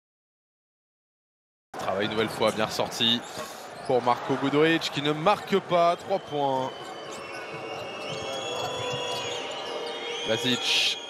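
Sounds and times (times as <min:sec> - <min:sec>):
arena crowd noise: 0:01.8 - 0:11.0
sneaker squeaks: 0:05.2 - 0:11.0.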